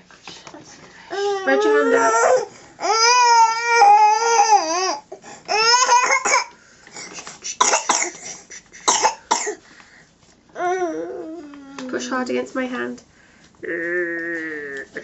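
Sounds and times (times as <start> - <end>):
child coughing: 5.7 - 6.5, 7.4 - 9.6.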